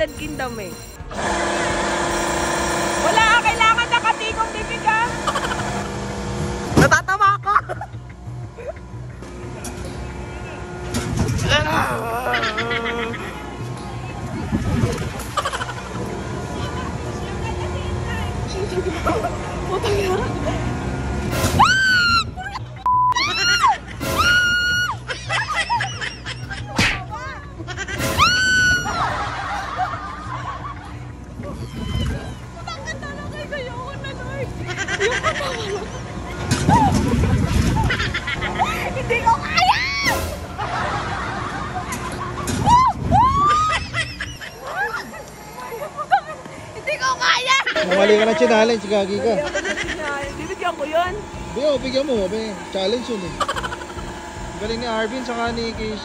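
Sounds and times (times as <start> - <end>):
mechanical whine: 0.0 - 56.0
ride machinery humming: 0.0 - 56.0
giggles and cries: 11.5 - 13.6
riders screaming: 23.2 - 25.1.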